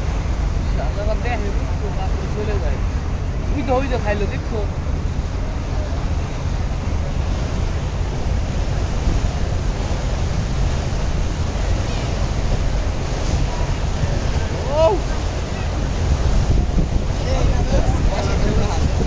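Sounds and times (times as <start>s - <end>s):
water rushing in boat wake: 0.0s - 19.0s
wind buffeting microphone: 0.0s - 19.0s.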